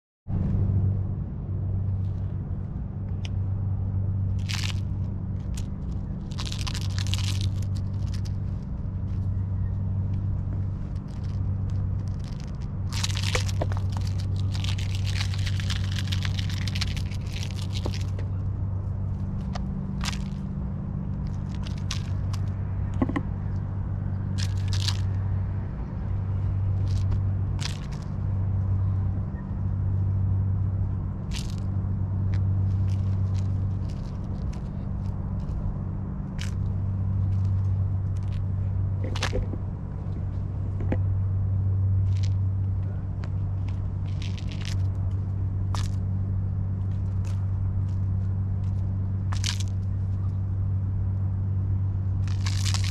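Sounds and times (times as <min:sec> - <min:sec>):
low hum: 0:00.3 - 0:52.9.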